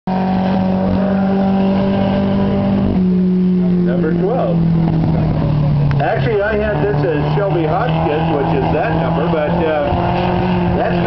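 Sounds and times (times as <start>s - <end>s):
race car engine at high revs: 0.1s - 11.0s.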